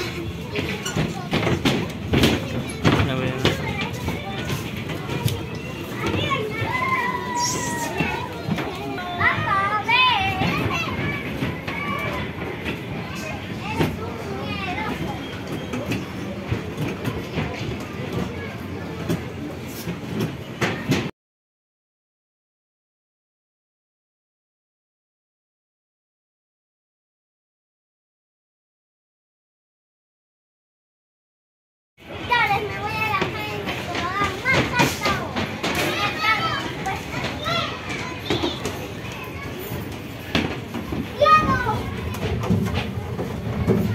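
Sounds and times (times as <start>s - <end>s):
ride rolling rumble: 0.0s - 21.1s, 32.0s - 43.9s
children shouting and squealing: 3.6s - 16.4s, 32.3s - 43.9s.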